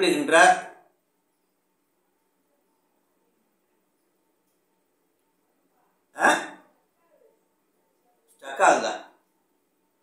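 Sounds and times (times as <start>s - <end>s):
man's short vocal sounds: 6.2s - 6.6s.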